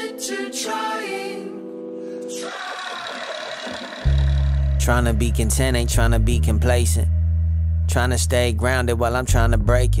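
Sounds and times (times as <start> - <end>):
faint swooping low tones: 4.1 - 9.4.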